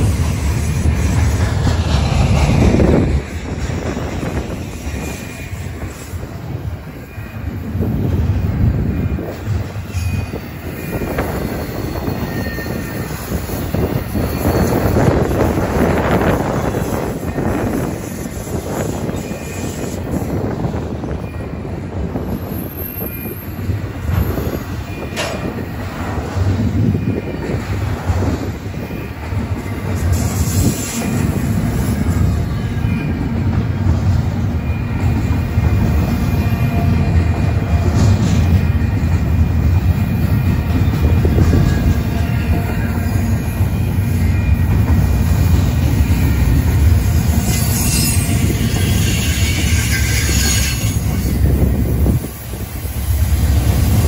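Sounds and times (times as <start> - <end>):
train wheels rumbling on rails: 0.0 - 54.0
high-pitched wheel squeals: 8.8 - 33.4, 39.9 - 51.8.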